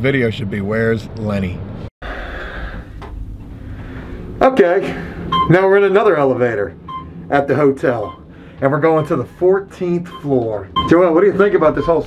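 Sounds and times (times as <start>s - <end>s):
elevator low rumble and hiss: 2.2s - 12.0s.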